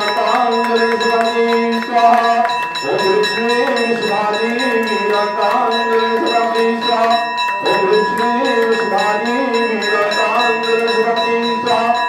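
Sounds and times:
devotional singing: 0:00.0 - 0:12.0
temple bell ringing: 0:00.0 - 0:12.0.

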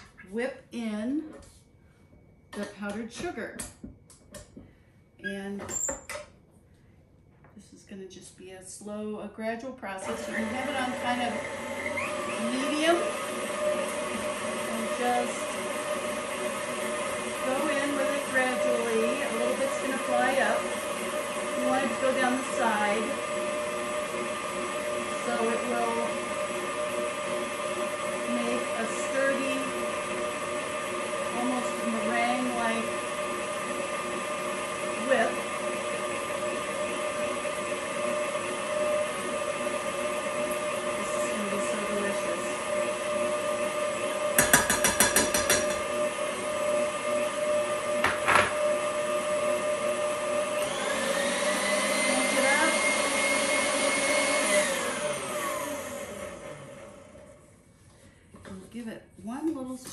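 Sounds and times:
stand mixer motor whine: 0:09.9 - 0:57.4.

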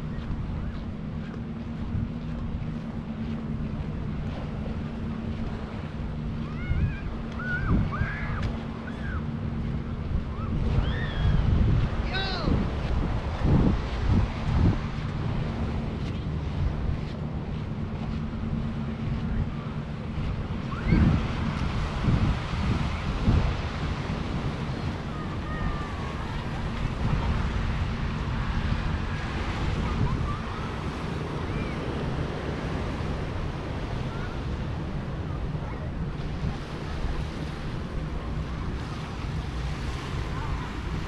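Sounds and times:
sea waves washing on shore: 0:00.0 - 0:41.0
wind buffeting microphone: 0:00.0 - 0:41.0.

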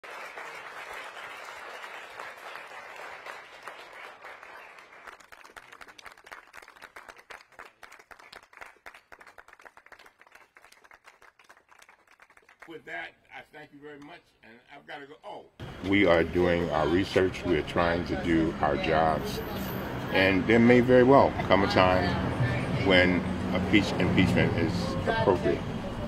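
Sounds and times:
audience applauding: 0:00.0 - 0:12.8.

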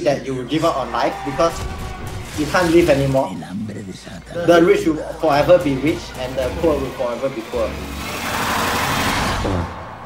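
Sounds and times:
loud rushing noise effect: 0:06.7 - 0:10.0.

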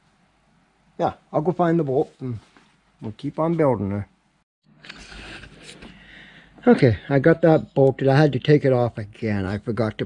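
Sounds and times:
faint rustling: 0:01.8 - 0:04.0.

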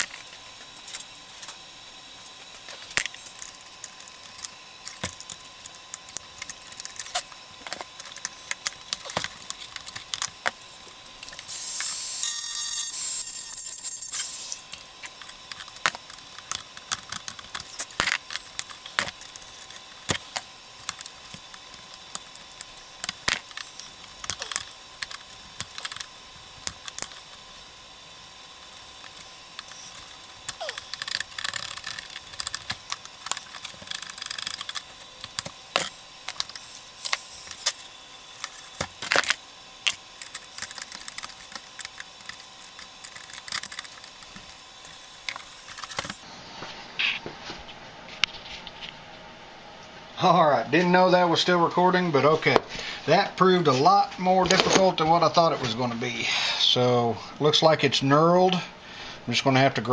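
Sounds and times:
plastic parts clicking and rattling: 0:02.6 - 0:11.9, 0:13.4 - 0:46.2.

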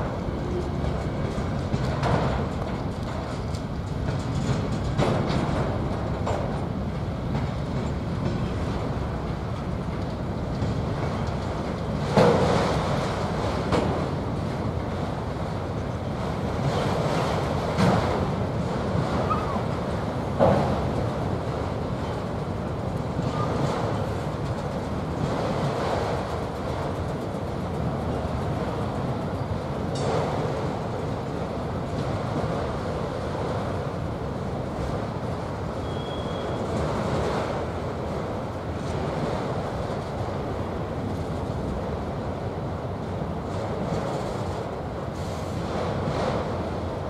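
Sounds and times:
train wheels rumbling on rail: 0:00.0 - 0:47.0.

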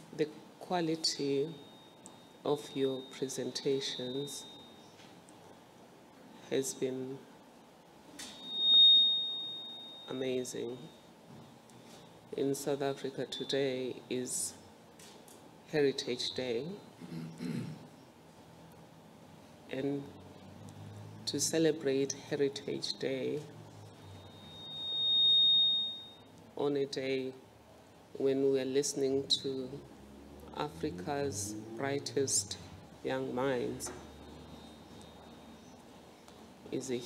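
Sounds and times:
high-pitched tone: 0:01.2 - 0:04.9, 0:08.2 - 0:11.0, 0:23.9 - 0:26.3, 0:33.1 - 0:35.7.

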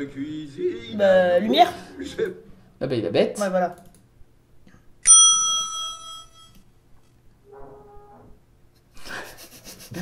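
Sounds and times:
bright bell-like ding: 0:05.1 - 0:06.6.

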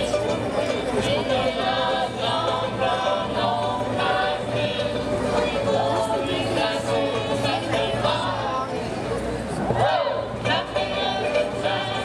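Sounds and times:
group of voices singing: 0:00.0 - 0:09.0, 0:09.6 - 0:12.0.

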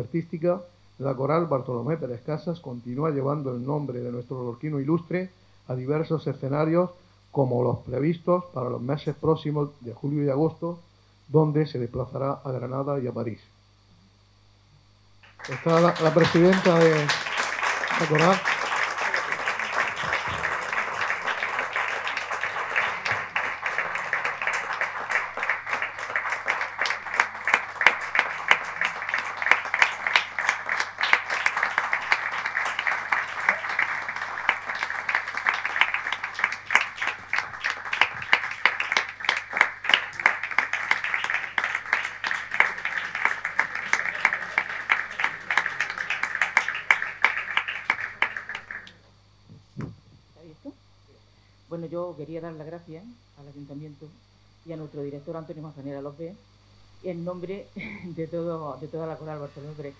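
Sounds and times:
audience applauding: 0:15.2 - 0:49.0.

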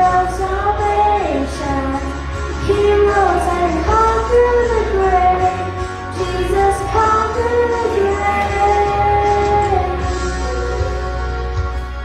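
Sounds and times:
girl singing into microphone: 0:00.0 - 0:11.4.

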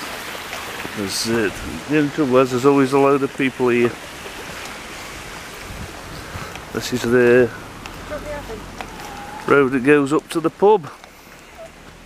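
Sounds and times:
steady outdoor wind: 0:00.1 - 0:02.3, 0:03.5 - 0:10.0
wind buffeting microphone: 0:00.8 - 0:09.9.

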